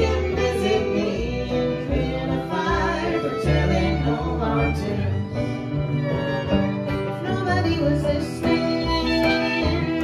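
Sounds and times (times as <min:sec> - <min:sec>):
acoustic string band playing folk: 0:00.0 - 0:10.0.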